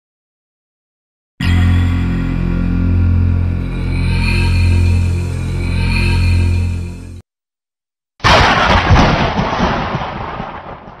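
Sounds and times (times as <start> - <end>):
thunderclap rumbling crash: 8.2 - 11.0.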